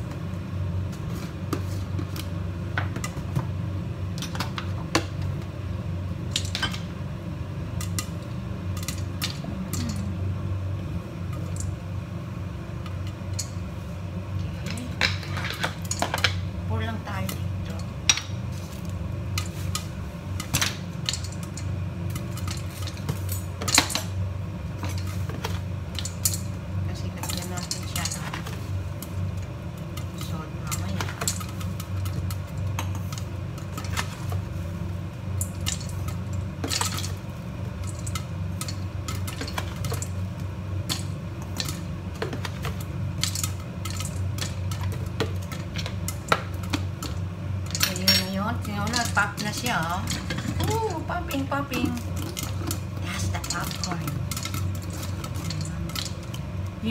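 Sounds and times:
popcorn popping in a pot: 0.0 - 56.9.

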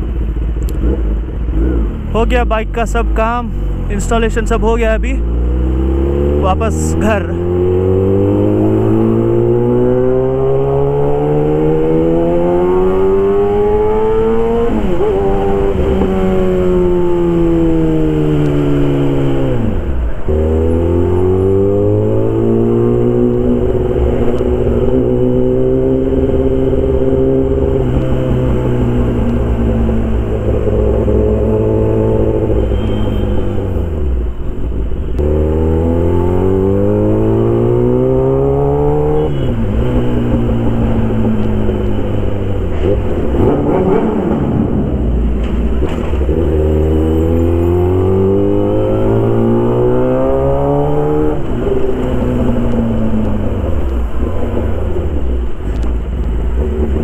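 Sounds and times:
motorcycle engine revving: 0.0 - 34.4, 35.1 - 57.0.

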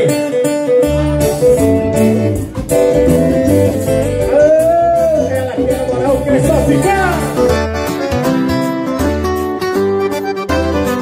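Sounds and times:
bass and drums: 0.0 - 11.0
guitar melody: 0.0 - 11.0.

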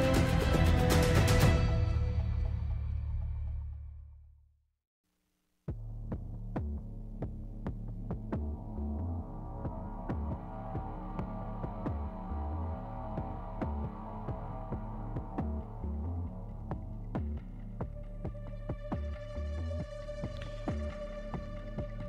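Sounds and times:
throbbing bass line: 5.7 - 22.0.

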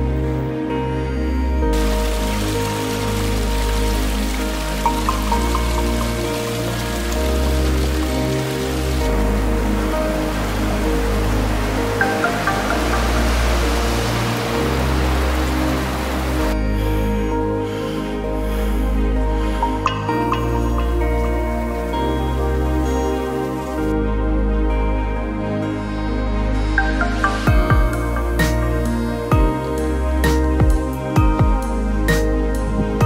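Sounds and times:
soft background music: 0.0 - 33.0
waterfall splashing: 1.8 - 16.6.

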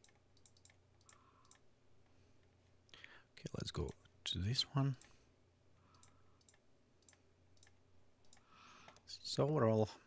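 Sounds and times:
faint computer mouse clicks: 0.0 - 1.7, 5.9 - 9.6.

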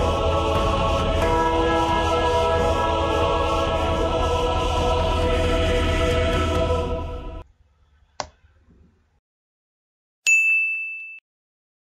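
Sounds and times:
notification bell ding: 10.3 - 11.2.

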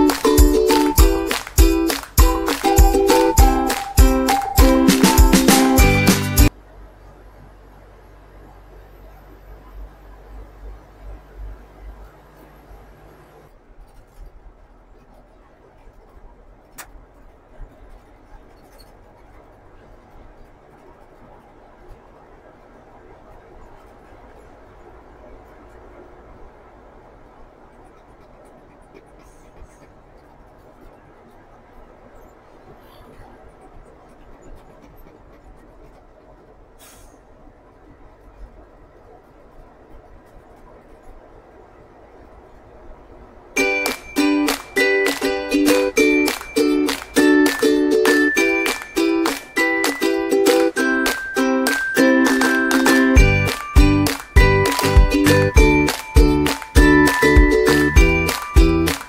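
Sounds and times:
engine and tyres rumbling: 0.0 - 59.0
brief hiss: 36.8 - 37.4.

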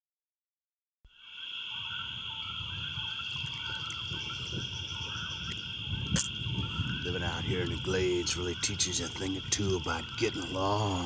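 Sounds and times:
high-pitched insect drone: 1.1 - 11.0
warbling wildlife calls: 1.1 - 11.0.

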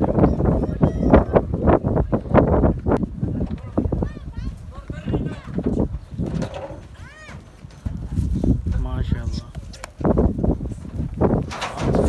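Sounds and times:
wind gusts on microphone: 0.0 - 12.0
high-pitched animal calls: 0.1 - 1.5.

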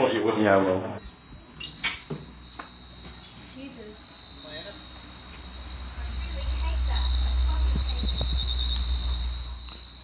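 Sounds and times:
high-pitched electronic tone: 1.0 - 10.0.

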